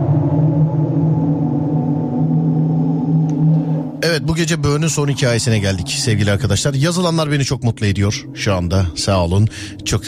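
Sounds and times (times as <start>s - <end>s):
dark eerie music drone: 0.0s - 10.0s.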